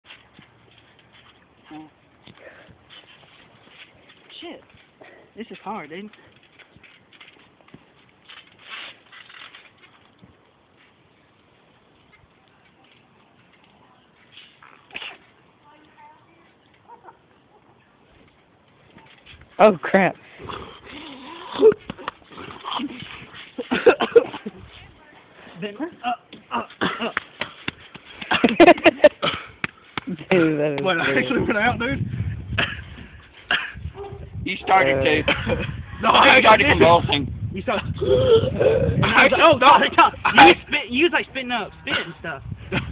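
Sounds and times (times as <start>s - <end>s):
man breathing: 2.4s - 2.8s
person grunting: 38.0s - 39.1s.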